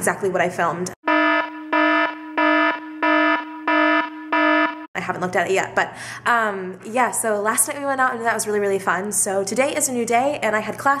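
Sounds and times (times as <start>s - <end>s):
electronic alarm buzzer: 1.0s - 4.9s.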